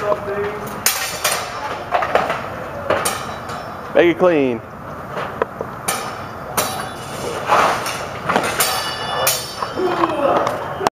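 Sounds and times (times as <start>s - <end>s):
steel swords clashing: 5.9s - 10.1s.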